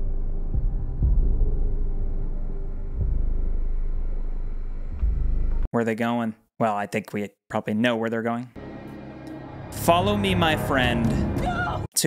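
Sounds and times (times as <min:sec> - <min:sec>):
deep ominous rumble: 0:00.0 - 0:05.7.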